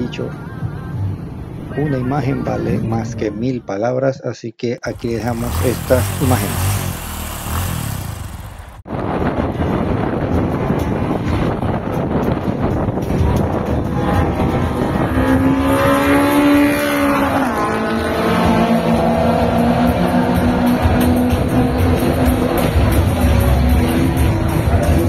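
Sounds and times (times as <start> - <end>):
pitched engine note: 4.9 - 8.8
drag racing engines accelerating: 4.9 - 8.9, 13.8 - 25.0.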